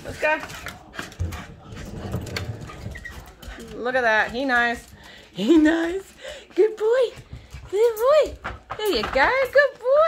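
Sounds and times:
footsteps on wooden floorboards: 0.0 - 9.8.

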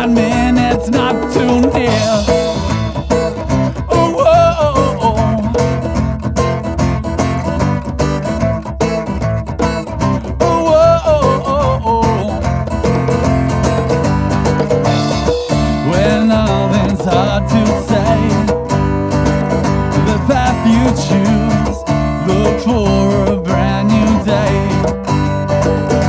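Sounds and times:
band playing instrumental: 0.0 - 26.0.

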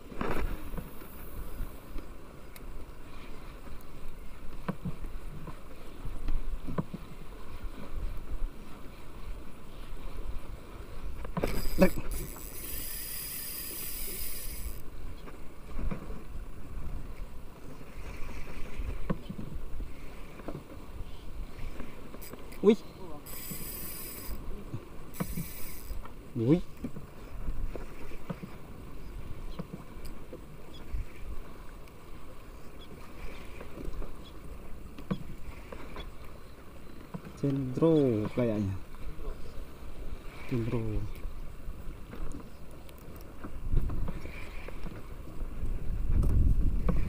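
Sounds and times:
wind and water rumble: 0.0 - 47.0.

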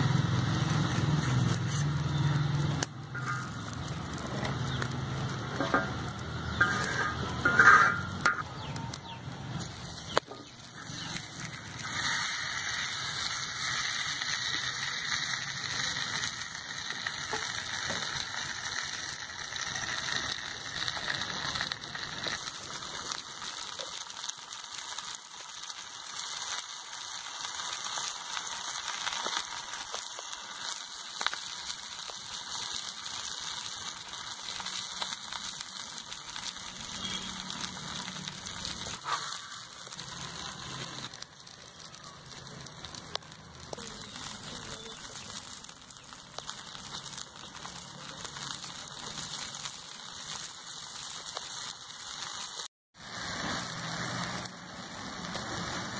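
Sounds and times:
fish sizzling in oil: 0.0 - 55.9.

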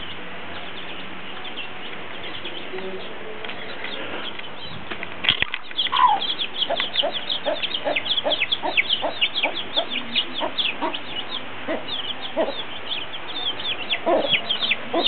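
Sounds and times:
baby chicks peeping: 0.0 - 15.0
hen clucking: 5.8 - 15.0.

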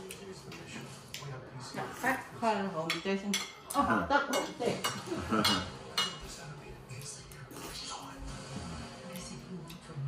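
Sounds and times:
cutlery clinking on dishes: 2.8 - 7.2.

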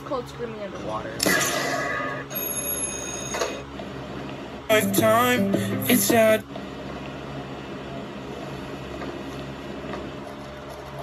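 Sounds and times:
ringing electronic tones: 2.3 - 3.6.

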